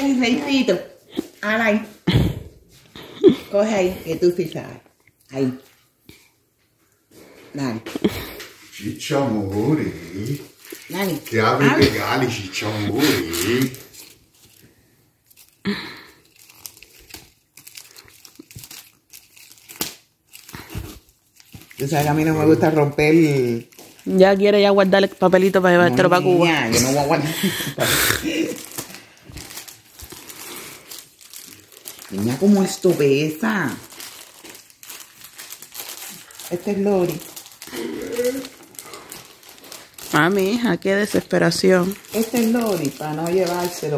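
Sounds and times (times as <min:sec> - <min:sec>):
wrapping paper crinkling: 0:09.0 - 0:27.1, 0:28.2 - 0:43.9
person coughing: 0:26.7 - 0:28.6
person humming: 0:37.7 - 0:38.6.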